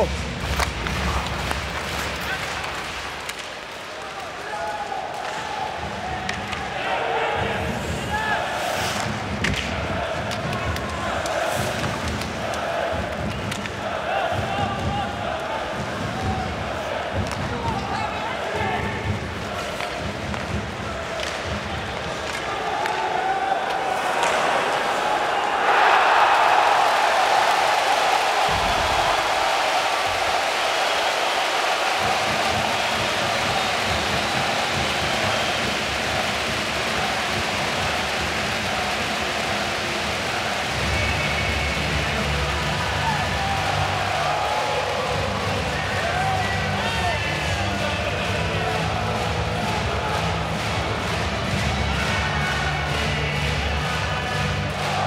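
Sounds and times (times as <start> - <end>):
crowd cheering: 0.0 - 55.0
pucks and sticks thudding on boards: 0.1 - 14.9, 15.8 - 18.0, 18.8 - 25.0.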